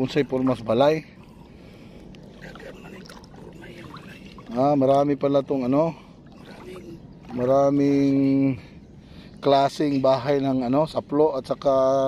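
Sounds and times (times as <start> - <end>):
shallow water swishing: 0.5 - 9.4.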